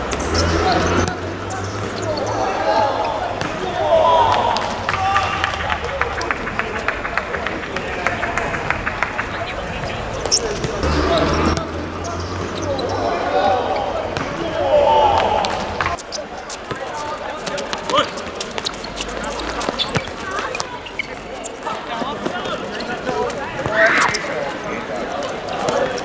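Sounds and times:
players shouting: 0.0 - 26.0.

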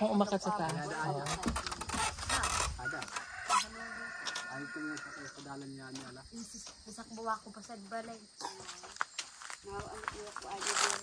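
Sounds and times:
rooster crowing: 2.8 - 5.4.

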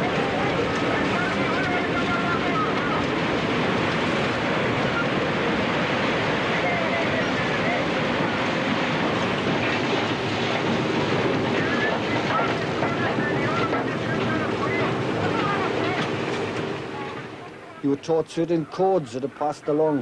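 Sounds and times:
mining machinery din: 0.0 - 19.5
indistinct voices: 0.0 - 20.0.

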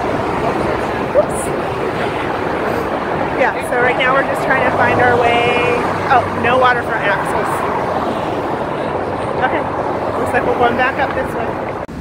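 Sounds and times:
freeway traffic roar: 0.0 - 12.0.

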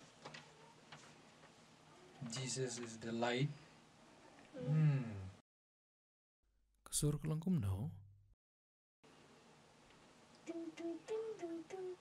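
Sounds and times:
young boy singing: 10.4 - 12.0.

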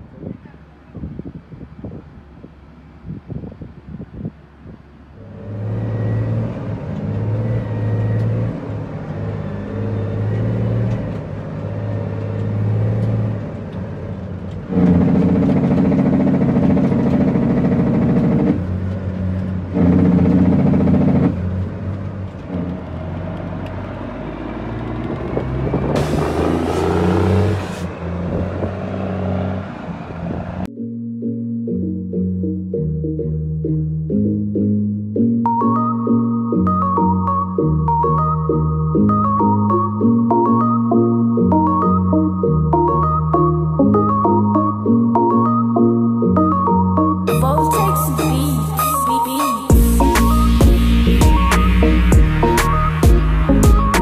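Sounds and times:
truck diesel engine shifting gears: 4.5 - 30.7, 35.3 - 54.0.

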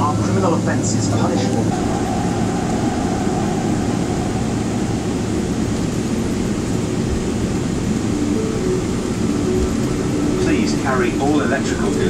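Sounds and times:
cabin air conditioning hiss: 0.0 - 12.0
jet engines rumbling: 0.0 - 12.0.

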